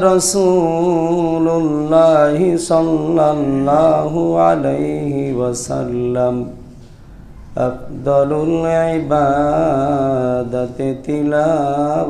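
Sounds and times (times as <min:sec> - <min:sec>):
man chanting melodically: 0:00.0 - 0:06.8, 0:07.4 - 0:12.0.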